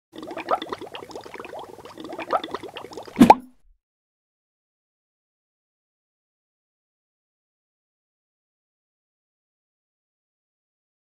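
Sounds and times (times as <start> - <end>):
bubbly rising plops: 0.2 - 3.6.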